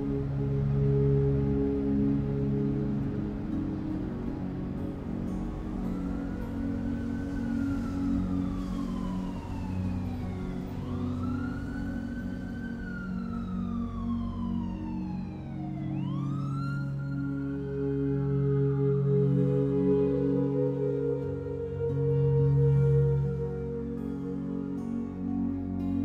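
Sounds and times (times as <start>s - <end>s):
ambient music drone: 0.0s - 26.0s
siren wailing: 0.0s - 26.0s.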